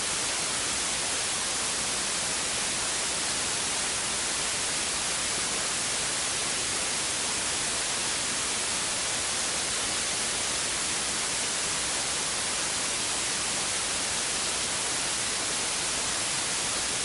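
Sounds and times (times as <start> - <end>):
static hiss: 0.0 - 17.0.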